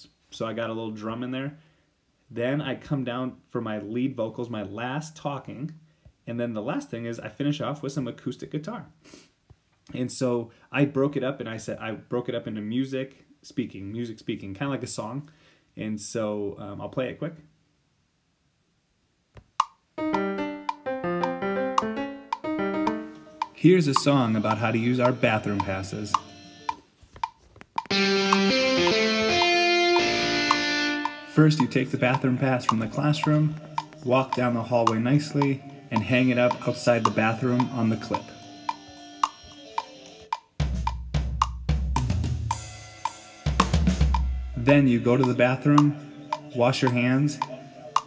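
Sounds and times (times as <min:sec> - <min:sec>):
piano playing: 0:20.0 - 0:26.7, 0:27.9 - 0:39.9
rock drum beat: 0:40.6 - 0:45.4.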